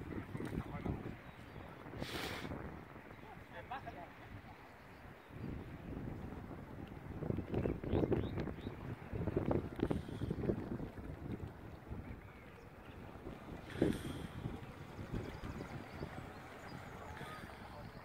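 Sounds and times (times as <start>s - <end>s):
wind buffeting microphone: 0.0s - 18.0s
faint voices: 13.5s - 18.0s.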